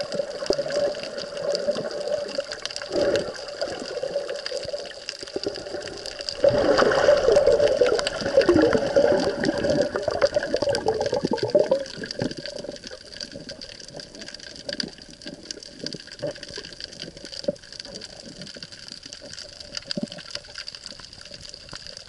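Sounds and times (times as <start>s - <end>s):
crackle of tiny clicks: 0.0s - 22.0s
water sloshing and bubbling: 0.0s - 22.0s.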